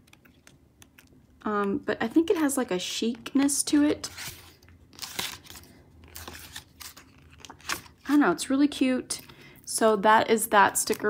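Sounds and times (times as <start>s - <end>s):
paper sheets rustling and crinkling: 4.0s - 8.1s.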